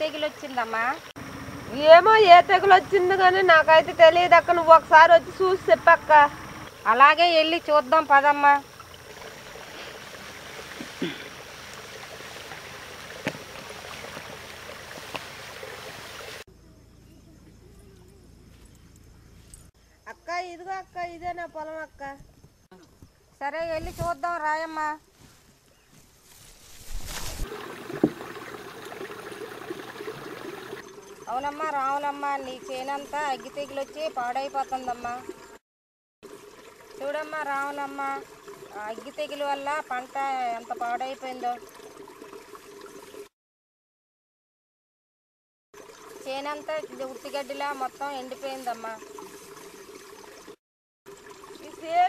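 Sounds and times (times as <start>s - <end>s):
woman talking: 0.0s - 1.0s, 1.7s - 6.3s, 6.9s - 8.6s, 20.1s - 25.0s, 31.3s - 35.3s, 37.0s - 41.6s, 46.2s - 49.0s, 51.6s - 52.0s.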